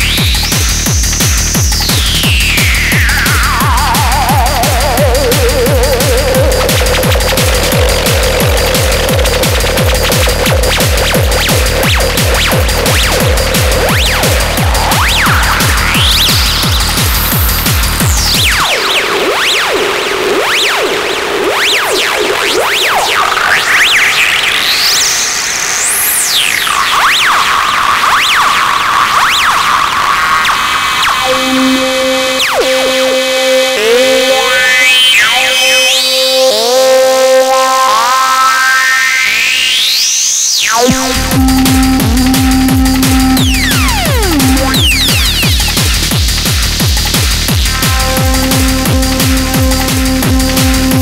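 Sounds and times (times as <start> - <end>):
fast techno kick drum: 0.0 - 19.5, 40.8 - 51.0
noisy synthesizer wash: 0.0 - 51.0
sharp falling synth sweep: 1.9 - 46.1
held synth tones: 2.2 - 18.7, 31.2 - 38.7, 40.6 - 45.8
held synth tone: 31.2 - 37.1, 40.7 - 45.6.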